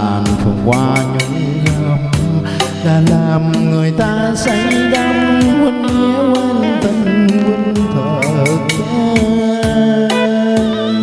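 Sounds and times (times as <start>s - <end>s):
karaoke backing track: 0.0s - 11.0s
man singing into a microphone: 0.0s - 11.0s.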